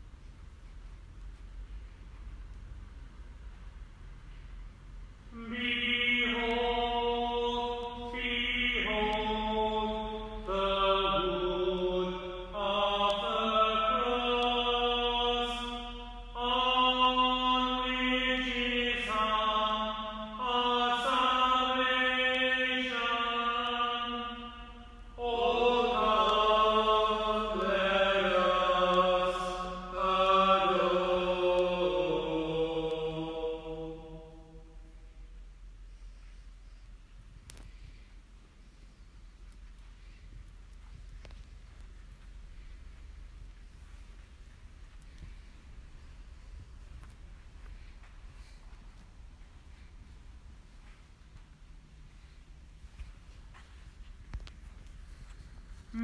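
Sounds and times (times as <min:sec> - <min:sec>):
person chanting liturgical melody: 0:05.3 - 0:35.1.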